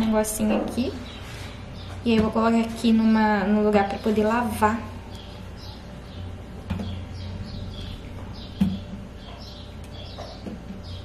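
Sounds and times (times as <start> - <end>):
small birds chirping: 0.0 - 11.0
steady low hum: 0.0 - 11.0.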